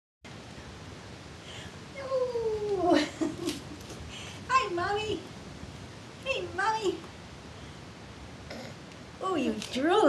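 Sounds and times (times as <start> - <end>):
baby vocal sounds: 8.5 - 8.9.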